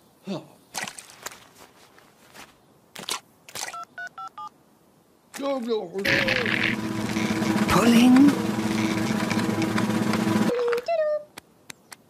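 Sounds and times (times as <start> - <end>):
scuffing on muddy ground: 0.8 - 3.2.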